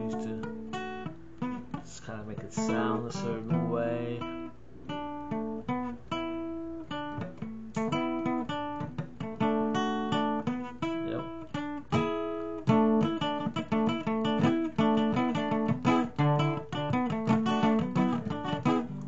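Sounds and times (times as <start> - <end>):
acoustic guitar picking: 0.0 - 19.0.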